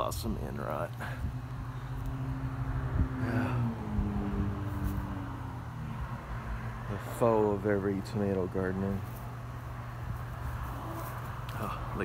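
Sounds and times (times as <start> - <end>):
constant tone: 0.0 - 12.0
low motor hum: 0.0 - 12.0.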